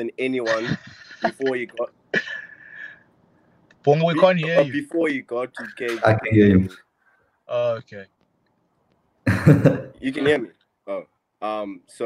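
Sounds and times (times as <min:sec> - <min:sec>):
person laughing: 0:00.5 - 0:02.5, 0:09.3 - 0:10.0.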